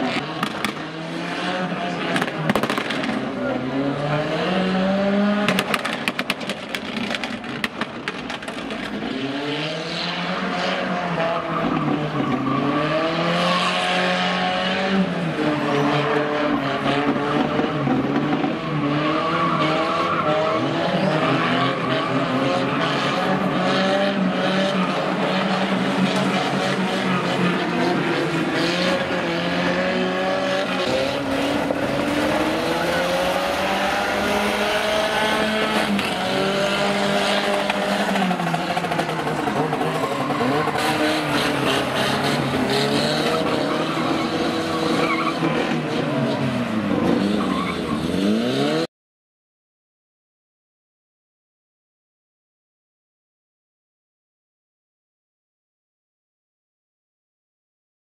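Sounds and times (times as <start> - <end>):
race car engines revving: 0.0 - 48.9
tyres skidding on loose track: 0.0 - 48.9.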